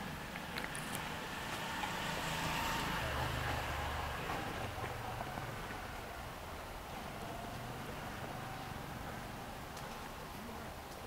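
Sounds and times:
vehicle passing rumble: 0.0s - 10.2s
city background noise: 0.0s - 11.0s.

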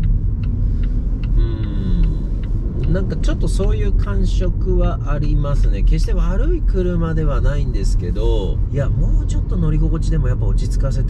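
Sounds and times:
car cabin road rumble: 0.0s - 11.0s
light regular ticking: 0.0s - 11.0s.

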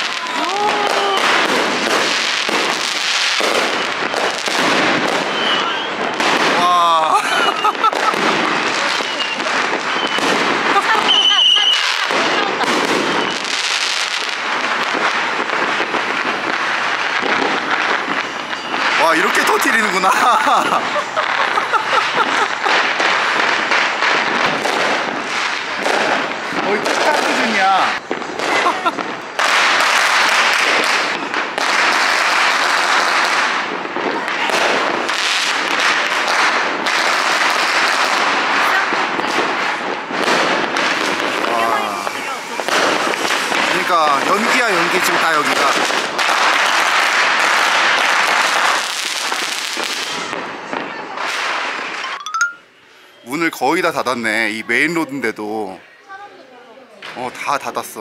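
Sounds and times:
rockets bursting overhead: 0.0s - 52.8s
firecrackers crackling: 0.0s - 58.0s.

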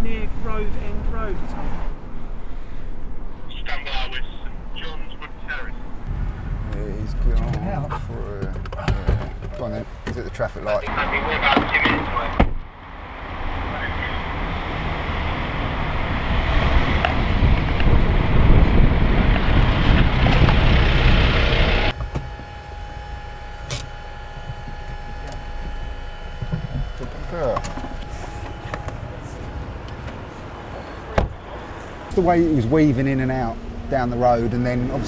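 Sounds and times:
busy road traffic: 0.0s - 35.0s.

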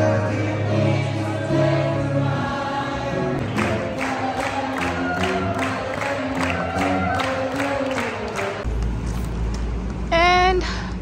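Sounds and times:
strummed or clapped accents: 3.4s - 8.7s.

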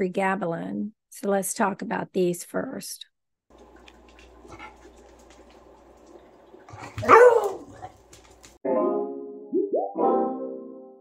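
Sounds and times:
dog barking: 6.8s - 8.0s
keyboard music: 8.6s - 11.0s.

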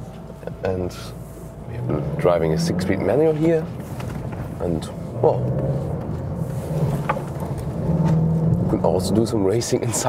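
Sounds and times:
car engine from inside cabin: 0.0s - 10.0s.

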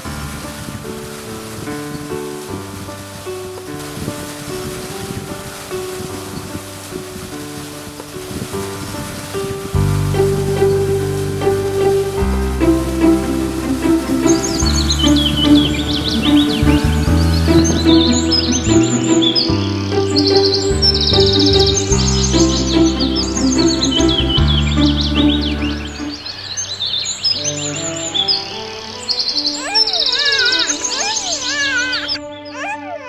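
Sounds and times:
background music with low notes: 0.0s - 33.0s
birds chirping and trilling: 12.6s - 33.0s.

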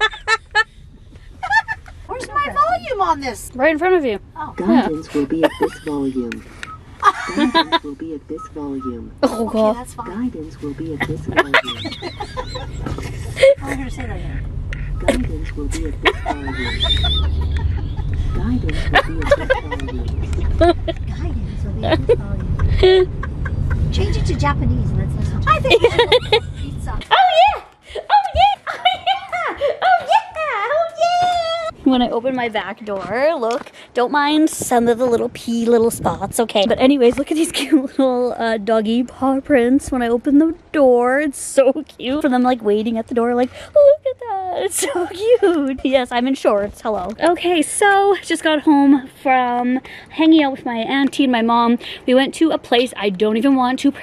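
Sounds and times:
woman laughing: 0.0s - 0.8s, 1.4s - 2.1s, 4.7s - 6.2s, 7.0s - 7.8s, 11.0s - 14.0s, 15.7s - 21.2s, 21.8s - 24.1s, 25.5s - 31.7s, 44.6s - 45.9s.

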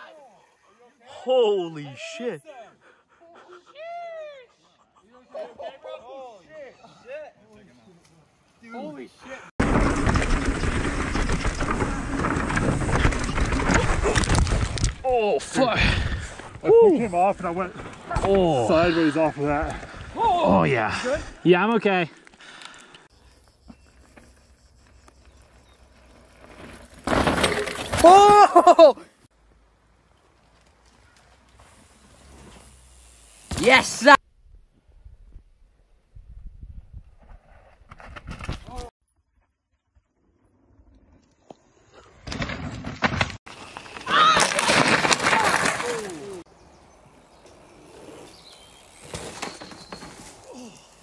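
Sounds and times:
mountain bike on dirt trail: 8.7s - 51.0s.

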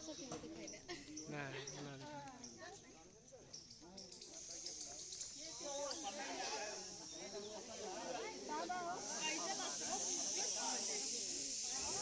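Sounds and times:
people talking indistinctly: 0.0s - 12.0s
steady high-pitched hiss: 0.0s - 12.0s.

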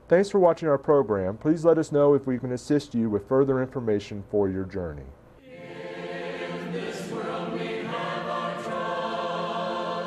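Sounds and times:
choir singing a hymn: 5.4s - 10.0s.

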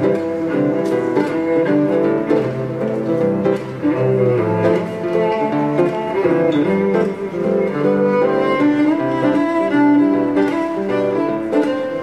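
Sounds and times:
bowed cello long notes: 0.0s - 12.0s
fingerstyle acoustic guitar: 0.0s - 12.0s.

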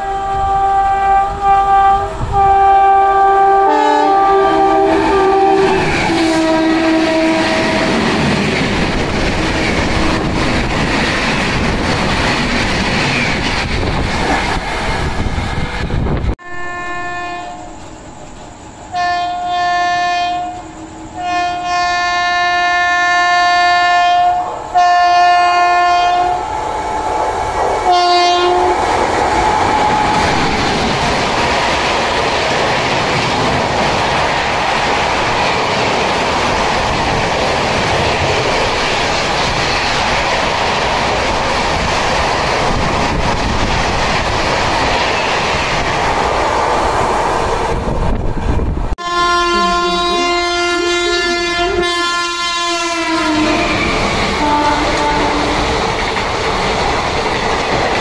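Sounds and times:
locomotive horn blasts: 0.0s - 8.0s, 16.4s - 17.9s, 18.9s - 26.5s, 27.8s - 30.4s, 49.0s - 55.7s
train coaches passing: 0.0s - 58.0s
wheel and rail noise: 4.4s - 22.0s, 25.8s - 49.0s, 49.6s - 58.0s.

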